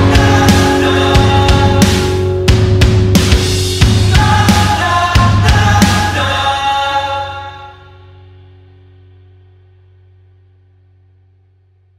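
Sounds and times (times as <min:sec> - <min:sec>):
band final chord ringing out: 0:00.0 - 0:04.4.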